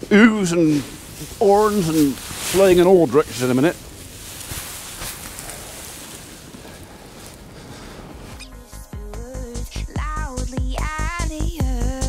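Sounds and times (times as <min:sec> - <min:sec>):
straw rustling: 0:00.0 - 0:08.7.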